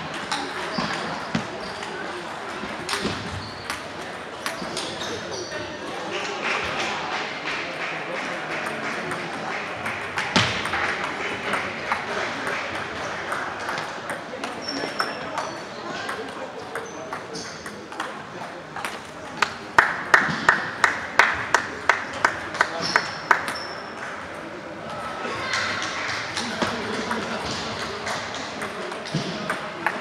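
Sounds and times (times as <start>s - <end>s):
crowd chatter: 0.0s - 30.0s.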